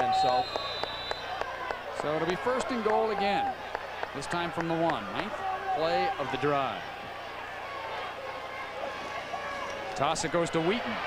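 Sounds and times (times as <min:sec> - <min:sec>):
stadium crowd noise: 0:00.0 - 0:11.0.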